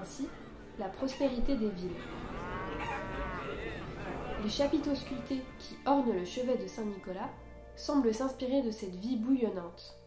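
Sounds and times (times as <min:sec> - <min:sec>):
low background rumble: 0:00.4 - 0:07.6
cow mooing: 0:01.9 - 0:05.3.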